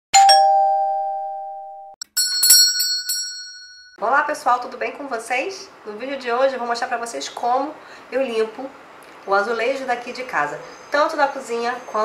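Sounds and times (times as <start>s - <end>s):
bright bell-like chime: 0.2s - 3.6s.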